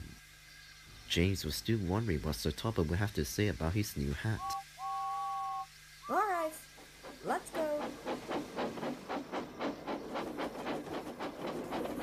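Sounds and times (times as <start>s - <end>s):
steam locomotive chuffing: 0.0s - 12.0s.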